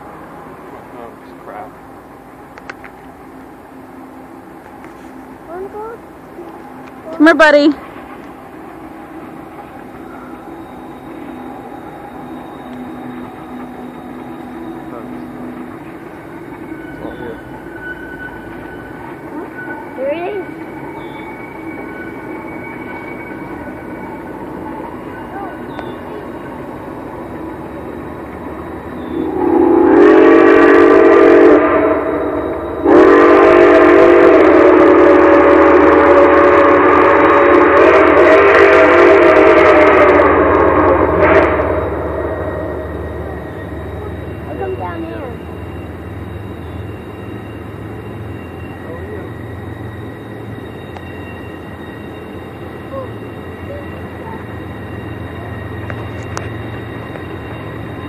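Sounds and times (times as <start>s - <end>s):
low rumble of train: 0.0s - 58.0s
steam locomotive whistle chord: 9.7s - 58.0s.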